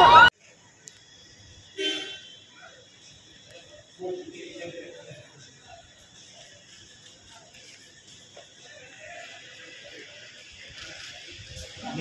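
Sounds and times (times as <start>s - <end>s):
vehicle horn toot: 1.8s - 2.4s.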